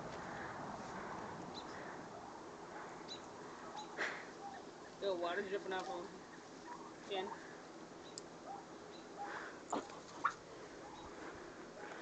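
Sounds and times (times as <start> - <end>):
goats rustling over dry grass: 4.6 - 8.0.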